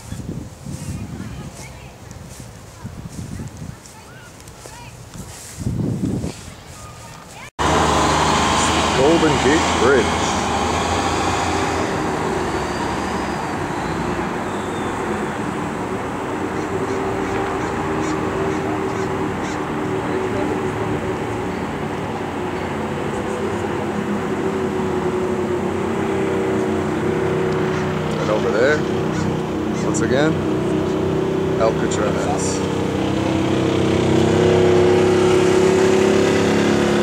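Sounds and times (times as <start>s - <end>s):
traffic rumble: 0.0s - 37.0s
faint voices: 16.4s - 32.7s.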